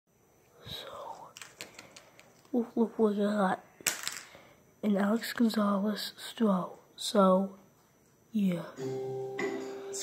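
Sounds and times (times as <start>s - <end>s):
faint breathy whisper: 0.5s - 1.4s.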